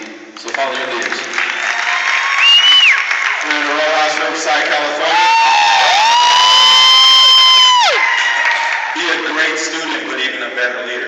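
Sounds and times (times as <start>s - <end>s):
person whooping: 2.4s - 3.0s, 5.0s - 8.0s.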